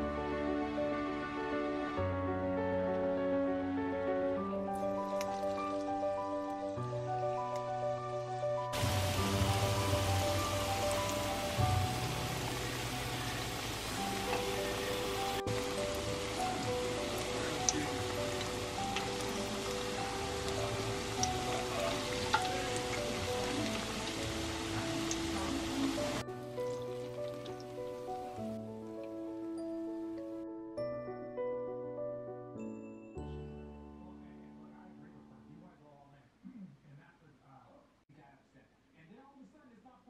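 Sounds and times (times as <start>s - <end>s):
background music: 0.0s - 36.3s
batter sizzling in hot oil: 8.8s - 28.5s.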